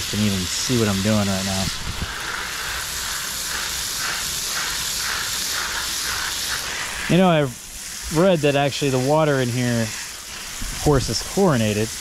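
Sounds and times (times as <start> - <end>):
hose nozzle spraying water on soil: 0.0 - 12.0.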